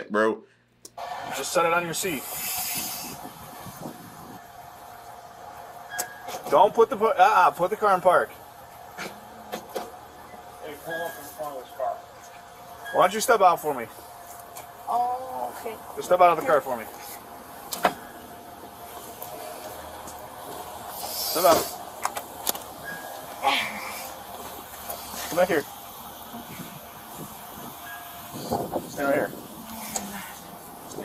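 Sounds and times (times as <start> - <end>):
thin constant tone: 3.2 - 31.0.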